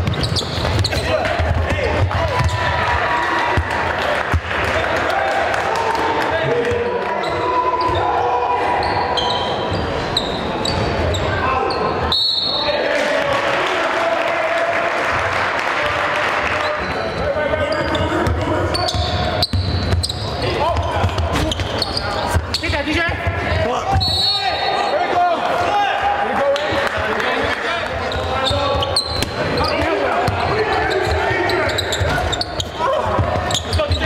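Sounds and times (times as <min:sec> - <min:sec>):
sneaker squeaks: 0:00.0 - 0:01.4, 0:02.3 - 0:02.7, 0:07.2 - 0:12.7, 0:16.6 - 0:23.2, 0:23.9 - 0:25.1, 0:28.0 - 0:34.0
basketball bouncing: 0:00.0 - 0:02.9, 0:18.2 - 0:24.1, 0:28.7 - 0:31.3, 0:31.9 - 0:34.0
crowd chatter: 0:00.0 - 0:34.0.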